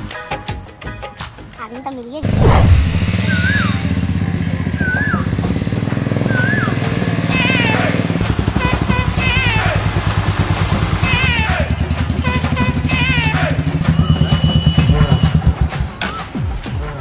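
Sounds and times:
motorcycle engines at low speed: 2.2 - 16.1.

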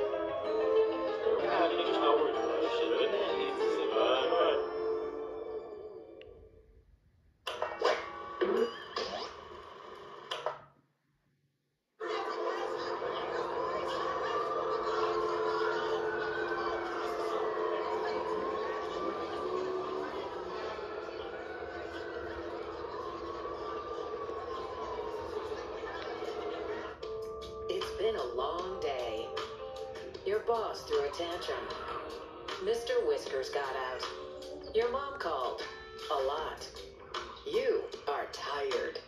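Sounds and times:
distant siren wailing: 13.7 - 27.0.

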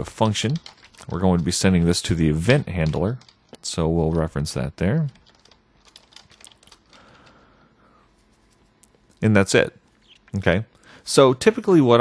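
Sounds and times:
keyboard typing: 0.0 - 7.4.

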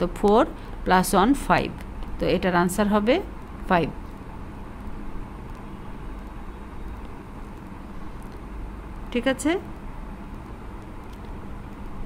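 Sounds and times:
low even hum: 0.0 - 12.0.

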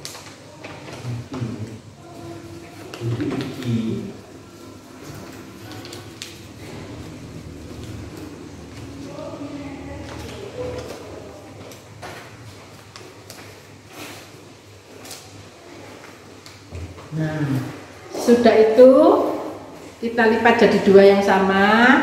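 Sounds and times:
paper rustling and crinkling: 0.0 - 18.1
steady low hum: 1.0 - 22.0.

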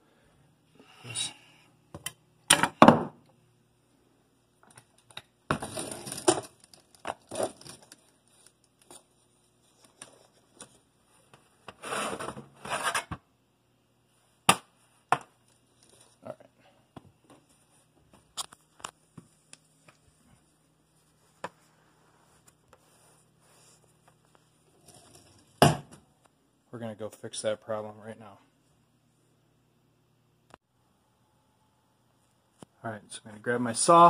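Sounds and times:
metal tray scraping: 11.8 - 13.2.

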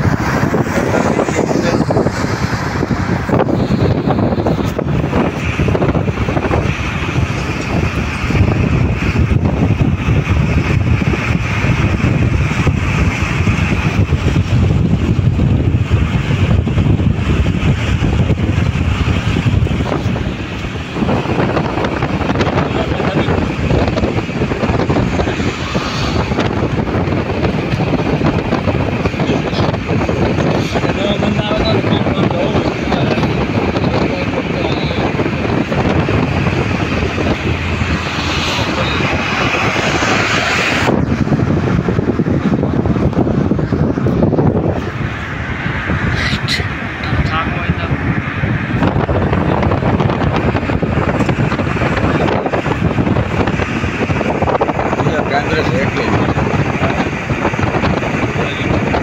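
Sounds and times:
tyres rushing on tarmac: 0.0 - 59.0
wind buffeting microphone: 0.0 - 59.0.

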